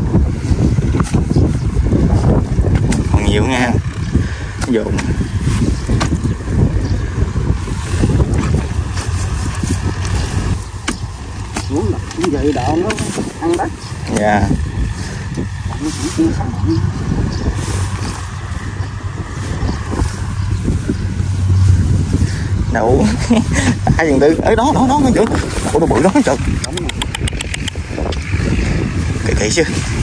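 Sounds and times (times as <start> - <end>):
wind on microphone: 0.0 - 30.0.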